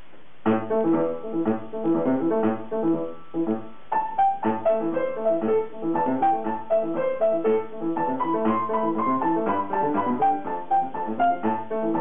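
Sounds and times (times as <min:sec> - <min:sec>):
grand piano playing: 0:00.5 - 0:12.0.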